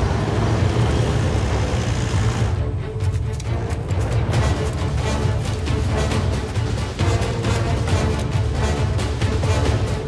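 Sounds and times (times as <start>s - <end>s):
road noise: 0.0s - 10.0s
vehicle engine rumble: 0.0s - 10.0s.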